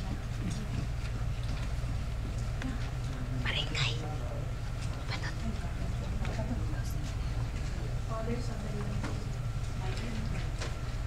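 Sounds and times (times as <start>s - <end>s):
steady low hum: 0.0s - 11.0s
people whispering: 2.6s - 9.1s.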